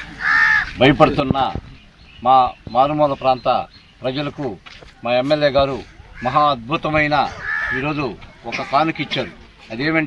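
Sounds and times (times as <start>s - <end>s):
crow cawing: 0.0s - 0.8s, 5.7s - 9.4s.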